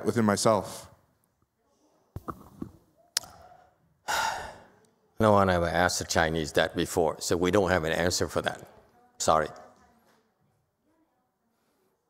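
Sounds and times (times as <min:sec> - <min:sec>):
mouth click: 0:03.1 - 0:03.5
man sighing: 0:04.1 - 0:04.7.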